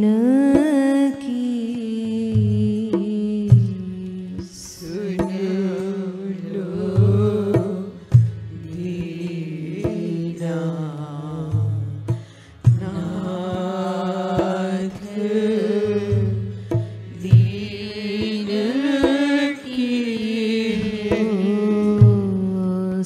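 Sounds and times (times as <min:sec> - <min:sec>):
person singing devotional song: 0:00.0 - 0:23.0
hand drum strokes: 0:00.5 - 0:23.0.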